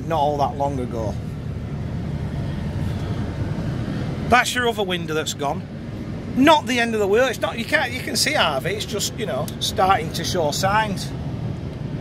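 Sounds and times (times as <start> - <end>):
diesel coach engine idling: 0.0 - 12.0.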